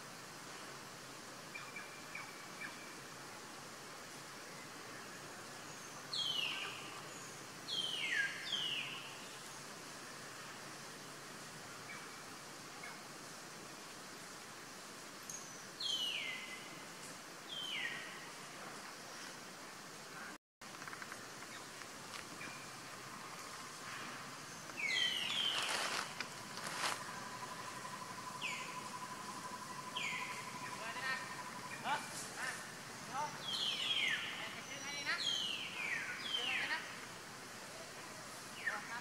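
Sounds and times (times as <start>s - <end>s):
steady hiss: 0.0s - 39.0s.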